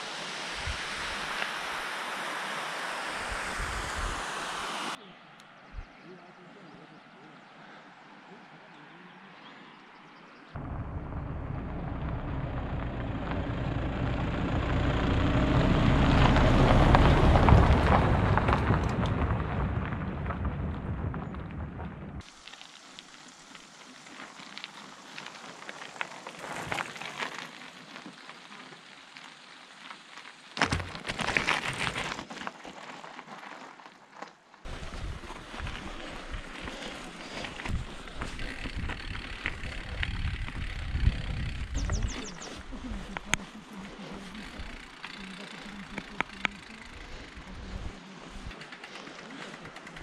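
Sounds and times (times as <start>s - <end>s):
wind buffeting microphone: 3.2s - 4.3s, 34.7s - 43.4s
bike tyres crunching on stones: 12.4s - 50.0s
scattered clicks: 44.6s - 47.4s, 48.4s - 50.0s.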